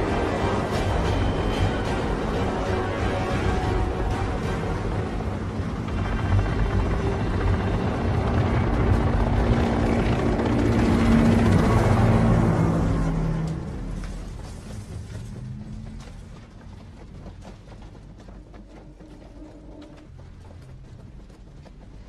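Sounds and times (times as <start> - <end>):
deep rumble: 0.0 - 21.8
film music: 0.0 - 22.0.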